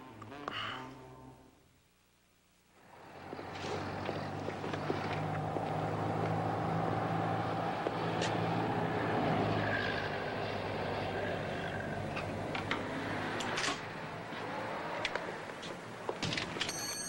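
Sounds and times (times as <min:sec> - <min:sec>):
low engine hum: 0:02.8 - 0:16.2
passing traffic: 0:02.8 - 0:16.9.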